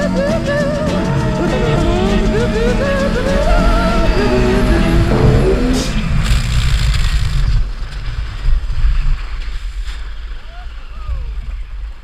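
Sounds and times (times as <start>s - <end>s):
music: 0.0s - 6.0s
snow tube sliding over snow: 0.7s - 12.0s
wind buffeting microphone: 1.4s - 12.0s.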